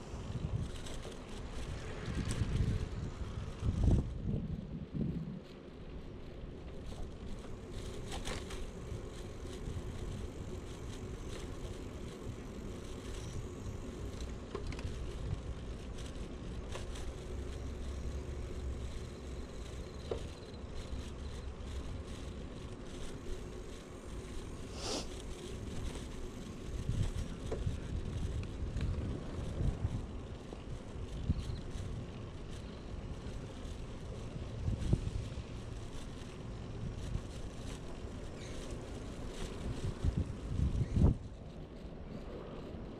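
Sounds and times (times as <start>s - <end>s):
bicycle bumps: 0.0s - 42.6s
bicycle tyres rumbling: 0.0s - 42.9s
bike clicks and rattles: 0.0s - 42.9s.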